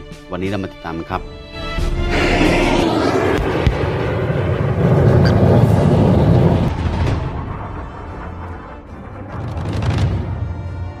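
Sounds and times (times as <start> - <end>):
dense low rumbling roar: 2.1 - 10.7.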